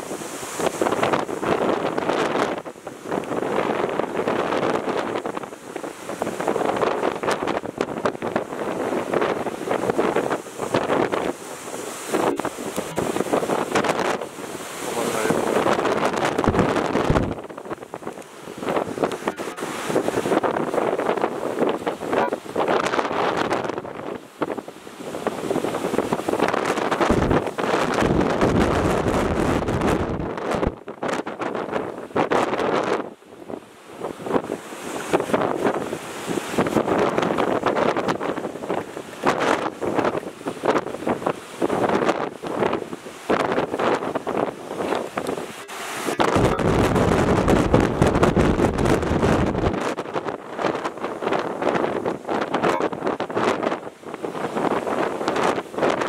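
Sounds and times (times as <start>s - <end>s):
heavy surf breaking: 0.0s - 56.0s
rough churning water: 0.0s - 56.0s
strong wind on microphone: 0.0s - 56.0s.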